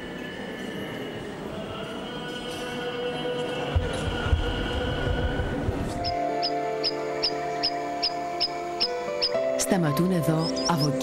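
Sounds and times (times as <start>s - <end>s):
crowded church ambience: 0.0s - 9.2s.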